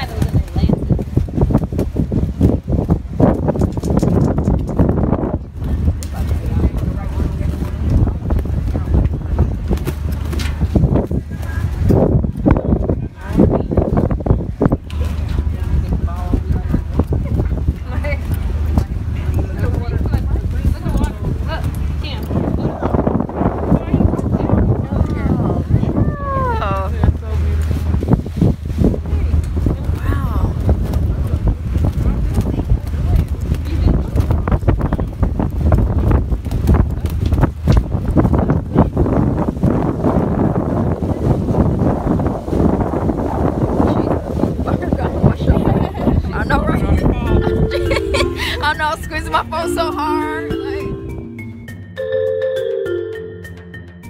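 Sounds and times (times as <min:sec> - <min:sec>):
people talking: 0:00.0 - 0:01.0, 0:05.4 - 0:28.0, 0:28.8 - 0:35.4, 0:43.1 - 0:51.2
wind buffeting microphone: 0:00.0 - 0:51.4
boat engine rumble: 0:00.0 - 0:54.0.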